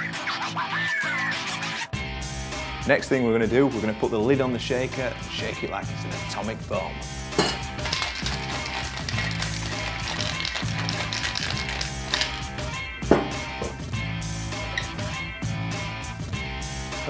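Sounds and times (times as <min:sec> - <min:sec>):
background music: 0:00.0 - 0:17.0
ice rattling in cocktail shaker: 0:07.4 - 0:12.5.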